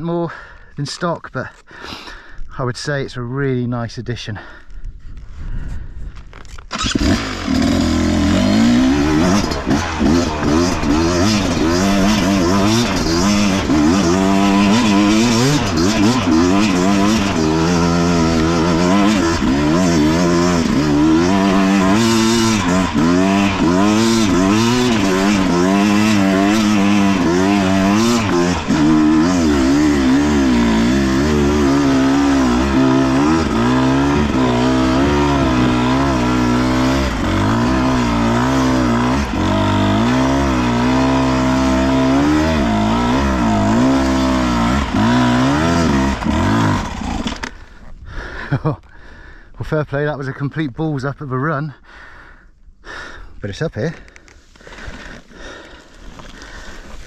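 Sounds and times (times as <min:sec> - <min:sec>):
two-stroke dirt bike engine revving: 0:06.7 - 0:47.8.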